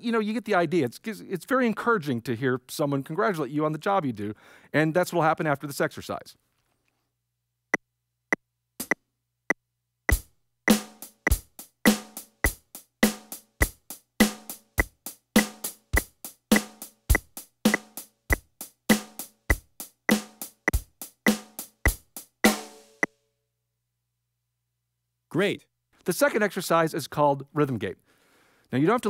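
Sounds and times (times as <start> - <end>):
electronic drum kit beat: 10.1 - 23.1.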